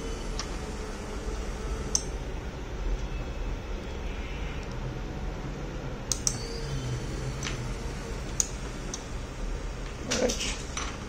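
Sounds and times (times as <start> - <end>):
steady low hum: 0.0 - 11.0
sharp clicks: 6.1 - 6.4, 8.3 - 9.1.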